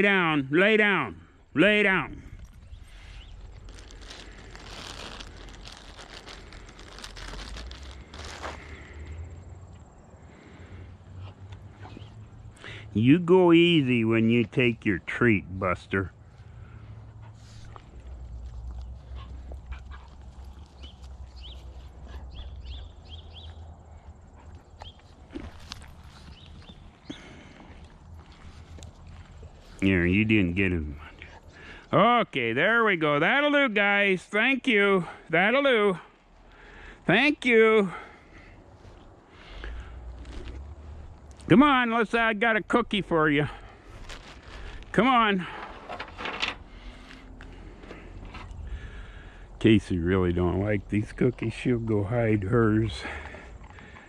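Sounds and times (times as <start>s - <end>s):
dog treats crinkling and crackling: 3.2s - 9.0s, 43.8s - 45.0s.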